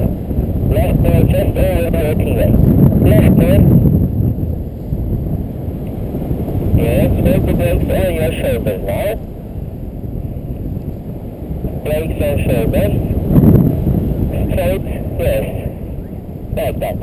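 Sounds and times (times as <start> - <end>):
wind rushing over microphone: 0.0 - 17.0
person speaking over radio: 0.7 - 3.7, 6.8 - 9.2, 11.8 - 13.1, 14.3 - 15.9, 16.5 - 17.0.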